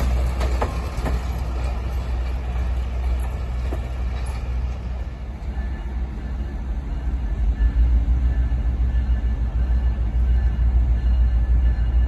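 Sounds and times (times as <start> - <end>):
passenger train rumbling: 0.0 - 12.0.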